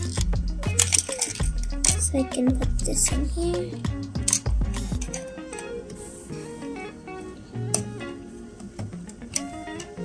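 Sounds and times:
plucked string melody: 0.0s - 10.0s.

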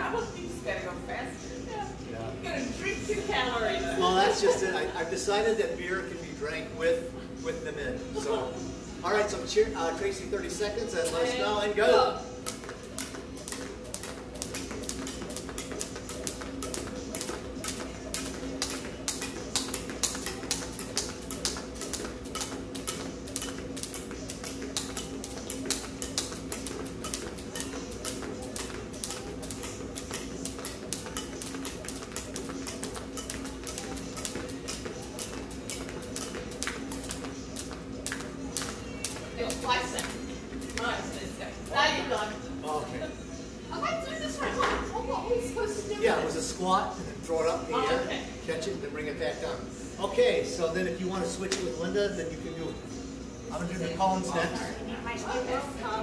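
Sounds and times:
steady low hum: 0.0s - 56.0s
jump rope slapping pavement: 12.4s - 40.9s.

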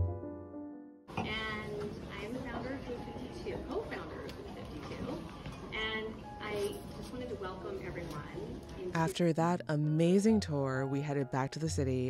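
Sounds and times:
piano chord ringing: 0.0s - 3.5s
crowd chatter in a room: 1.1s - 9.2s.

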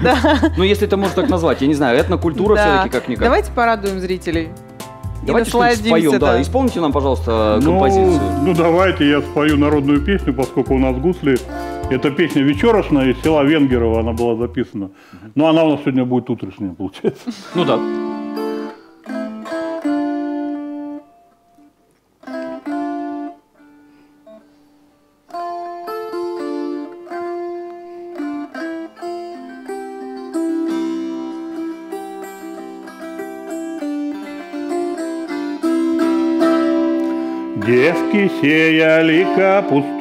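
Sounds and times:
plucked psaltery strings: 0.0s - 14.5s, 17.5s - 24.5s, 25.2s - 40.0s
man singing: 7.6s - 9.6s, 37.6s - 40.0s.

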